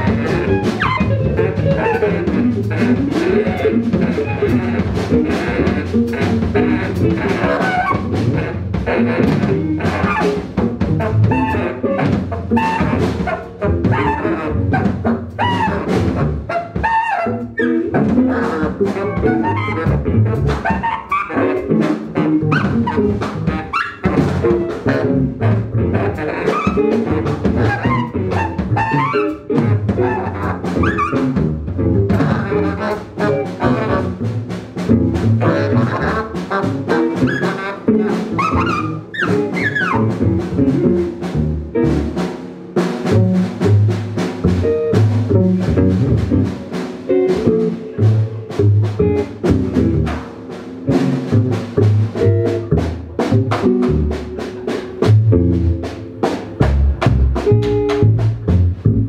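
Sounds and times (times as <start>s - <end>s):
saxophone: 0.0s - 42.4s
busy drumming: 0.0s - 59.0s
double bass: 0.0s - 59.0s
electric guitar: 0.0s - 59.0s.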